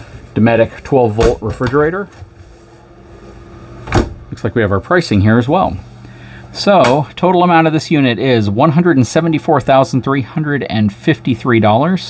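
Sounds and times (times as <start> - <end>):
low steady background hum: 0.0 - 12.0.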